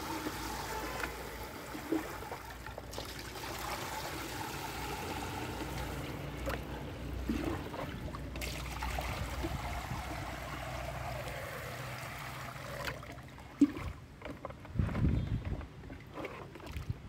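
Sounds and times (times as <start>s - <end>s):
water pouring through sieve: 0.0s - 14.4s
water splashing: 0.0s - 14.5s.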